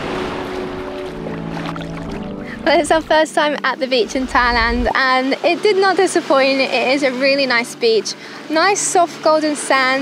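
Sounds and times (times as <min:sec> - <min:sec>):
background music with held notes: 0:00.0 - 0:10.0
sea water sloshing: 0:00.0 - 0:10.0.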